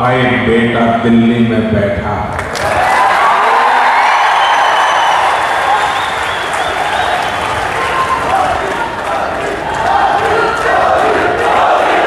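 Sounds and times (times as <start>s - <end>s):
crowd applauding and cheering: 2.3s - 12.0s.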